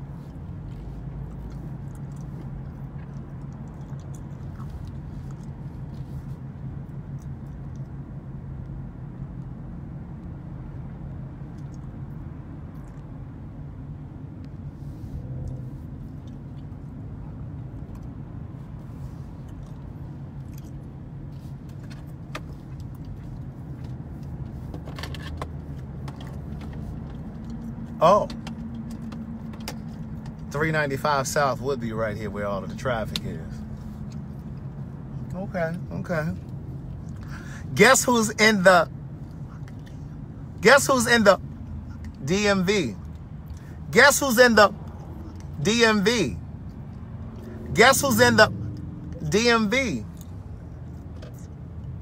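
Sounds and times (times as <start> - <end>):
car engine and road hum: 0.0 - 52.0.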